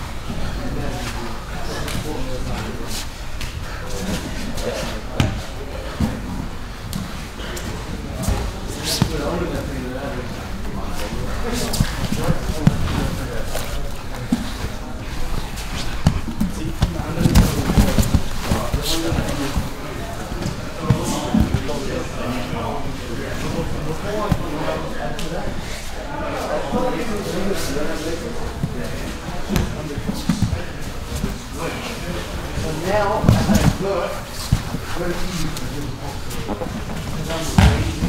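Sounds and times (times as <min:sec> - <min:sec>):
bodies thudding on mats: 0:15.9 - 0:21.7, 0:37.5 - 0:38.0.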